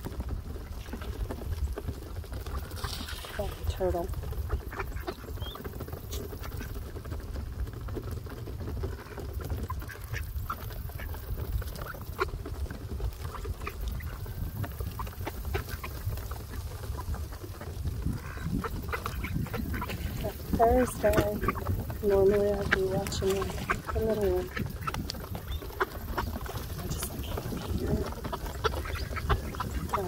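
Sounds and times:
duck bills pecking on boards: 0.1 - 30.0.

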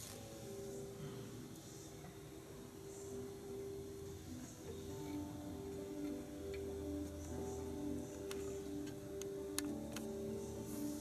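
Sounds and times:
soft music of sustained chords: 0.0 - 11.0.

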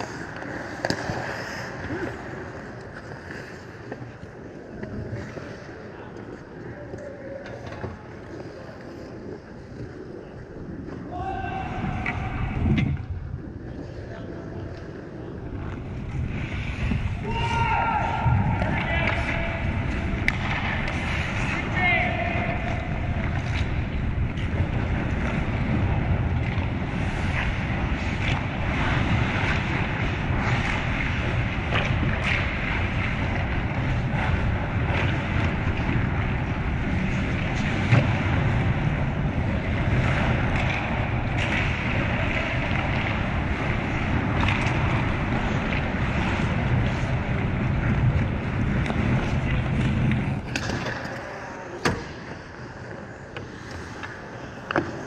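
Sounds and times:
steady rushing noise: 0.0 - 55.0
people shouting: 17.2 - 19.7.

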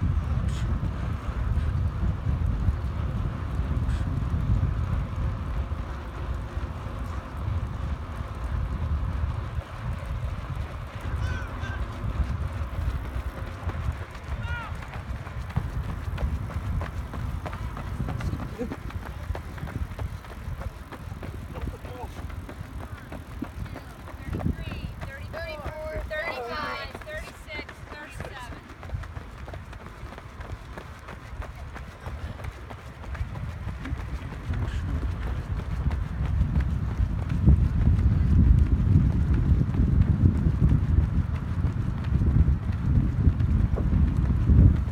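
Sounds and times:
runners' footfalls on a track: 0.0 - 44.9
wind buffeting microphone: 0.0 - 44.9.

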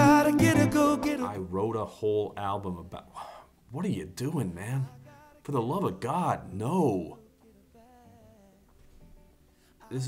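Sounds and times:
person singing quietly: 6.4 - 8.8.

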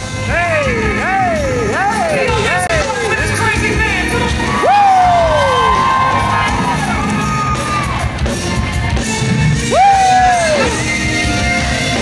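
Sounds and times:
live gospel band playing: 0.0 - 12.0
swooping lead guitar line: 0.0 - 12.0
crowd cheering: 4.0 - 12.0.

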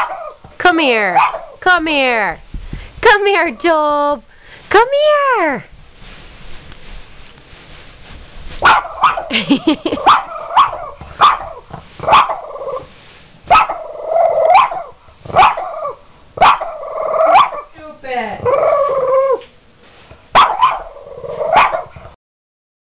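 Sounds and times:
dog barking: 0.0 - 0.4, 1.2 - 1.6, 8.6 - 9.3, 10.0 - 12.5, 13.5 - 13.9, 14.5 - 17.7, 20.3 - 22.2
dog drawn-out call: 13.5 - 17.7, 20.4 - 22.0.

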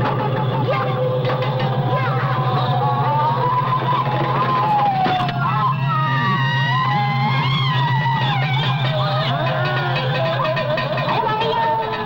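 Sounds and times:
gliding high synth tones: 0.0 - 12.0
pulsing low drone: 0.0 - 12.0.

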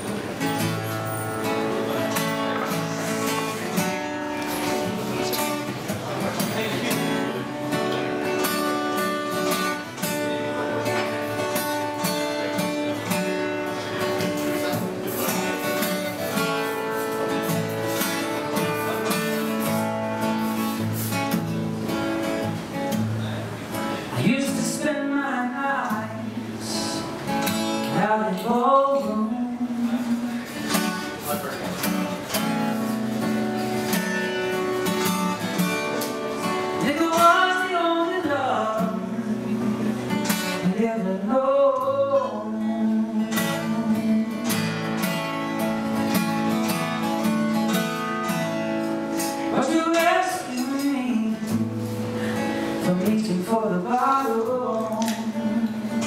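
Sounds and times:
acoustic guitar strummed: 0.0 - 56.0
man singing wordless notes: 24.1 - 31.2, 36.3 - 45.0, 49.4 - 56.0.

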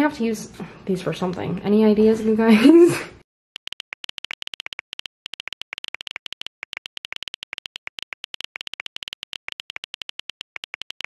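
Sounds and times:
keyboard typing clicks: 3.6 - 11.0.

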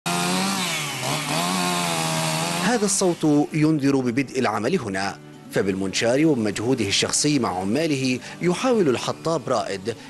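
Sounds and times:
chainsaw cutting log: 0.1 - 3.8.

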